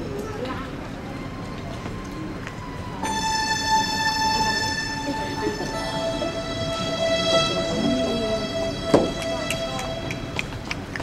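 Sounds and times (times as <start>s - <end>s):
high-pitched horn-like tone: 3.0s - 10.9s.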